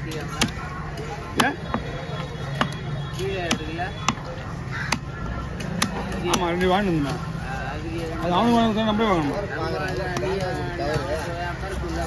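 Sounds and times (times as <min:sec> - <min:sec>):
knife chopping fish on wood: 0:00.2 - 0:00.6, 0:03.4 - 0:04.3, 0:04.9 - 0:06.6.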